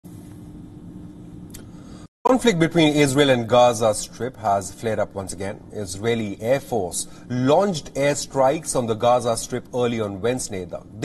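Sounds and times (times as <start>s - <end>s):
faint steady hum: 0.1s - 11.0s.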